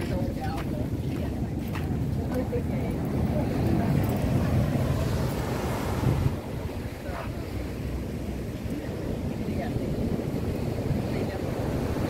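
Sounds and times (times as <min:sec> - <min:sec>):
ocean surf washing: 0:00.0 - 0:12.0
wind buffeting microphone: 0:00.0 - 0:12.0.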